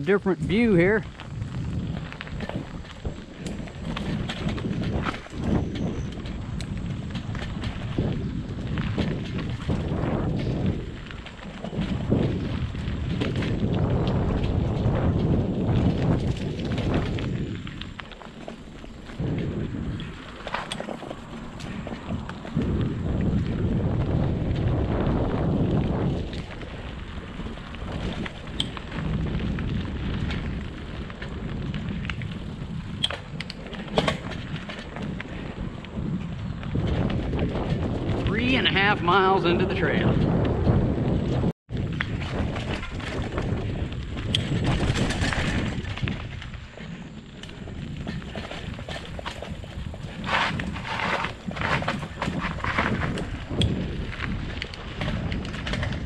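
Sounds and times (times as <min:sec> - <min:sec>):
bike clicks and rattles: 0:00.0 - 0:56.0
bike tyres on dirt trail: 0:00.0 - 0:56.0
wind on microphone: 0:00.0 - 0:56.0.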